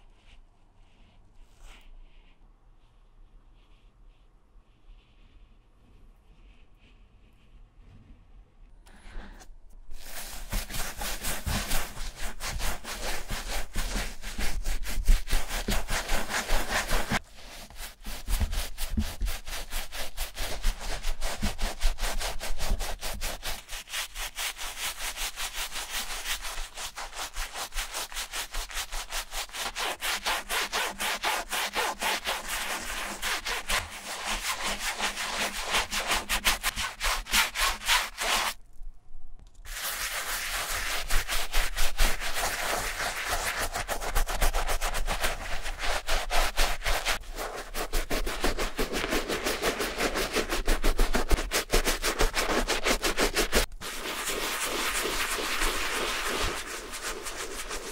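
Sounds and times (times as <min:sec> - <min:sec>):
brush scrubbing shoe fabric: 0:09.8 - 0:38.6, 0:39.7 - 0:57.9.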